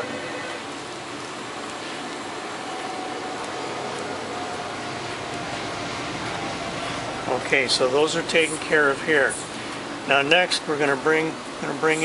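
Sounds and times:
ventilation hum and hiss: 0.0s - 12.0s.

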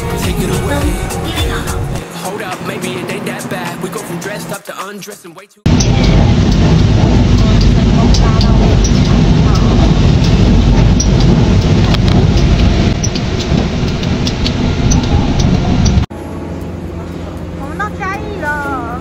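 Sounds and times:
train interior rumble: 0.0s - 4.6s, 5.7s - 19.0s.

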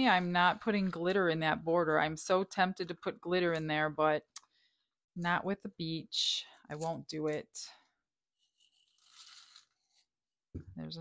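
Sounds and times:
shells scraping in plastic cup: 8.4s - 10.0s.

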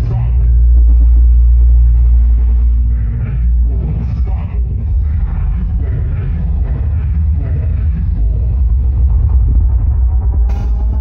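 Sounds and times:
live band low bass note: 0.0s - 11.0s.

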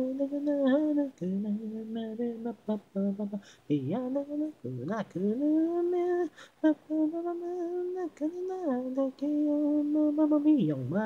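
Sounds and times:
person singing a cappella: 0.0s - 11.0s.

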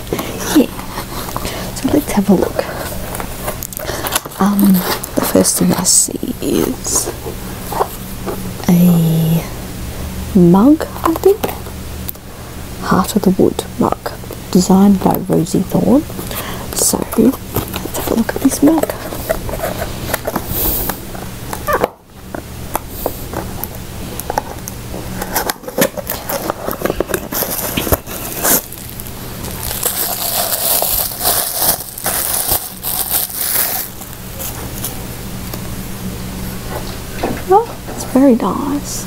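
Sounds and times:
low electrical hum: 0.0s - 39.0s
packaging rustling and crackling: 23.0s - 35.0s.

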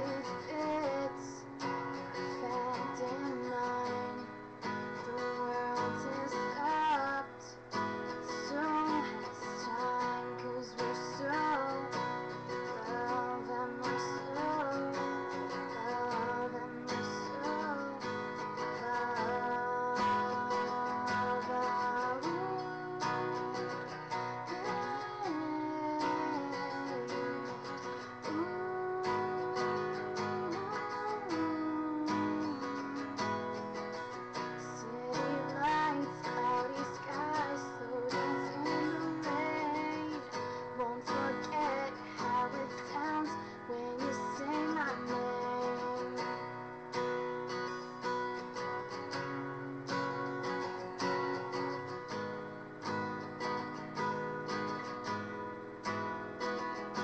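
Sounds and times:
acoustic guitar strumming: 0.0s - 57.0s
young woman singing: 0.0s - 57.0s.

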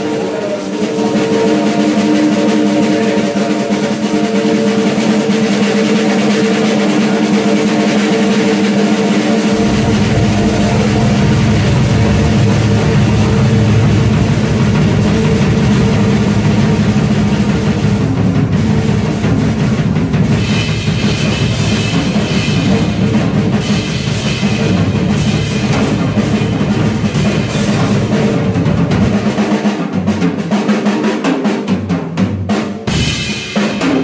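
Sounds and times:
drum kit: 0.0s - 34.0s
live band playing: 6.4s - 21.9s
deep bass: 9.4s - 19.7s.

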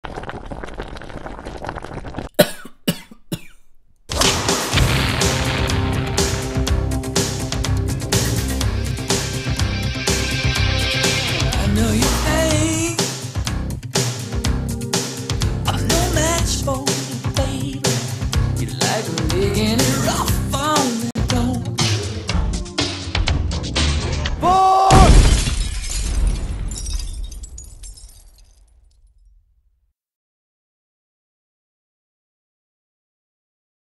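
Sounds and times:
person coughing: 2.4s - 3.9s
held pitched tone: 8.2s - 12.7s
glass shattering: 24.9s - 29.2s
tinkling glass shards: 25.6s - 28.7s.

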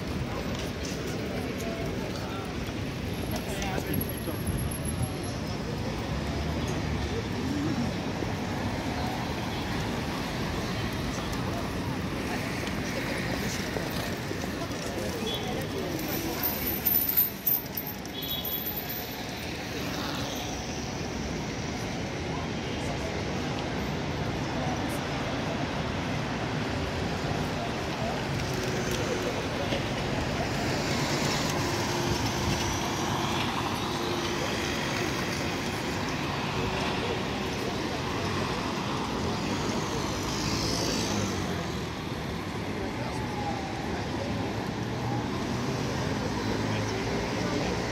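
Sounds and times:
road traffic noise: 0.0s - 47.9s.

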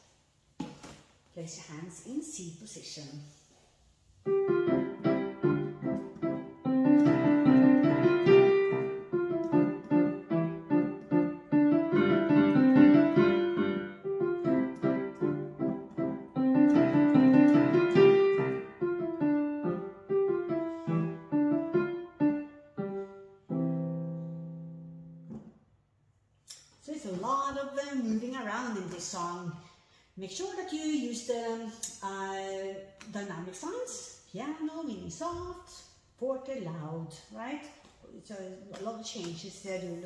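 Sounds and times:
digital piano playing: 4.3s - 25.3s.

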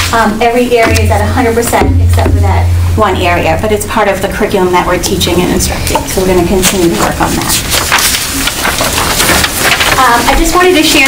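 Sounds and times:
crackling static hiss: 0.0s - 11.0s.

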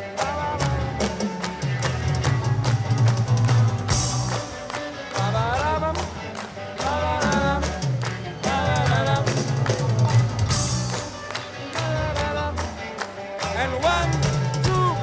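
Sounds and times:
repeating bass line: 0.2s - 15.0s.

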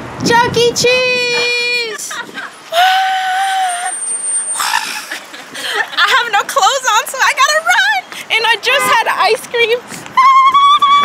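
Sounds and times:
woman yelling: 0.3s - 2.2s, 6.0s - 9.4s.

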